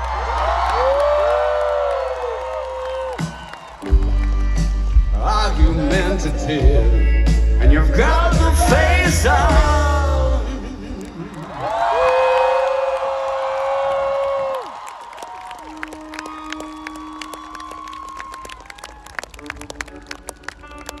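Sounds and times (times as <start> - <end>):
loud held whoop: 0.0 - 3.9, 11.4 - 19.3
crowd cheering and clapping: 0.0 - 5.0, 8.3 - 10.2, 10.8 - 21.0
rock song: 3.2 - 10.9.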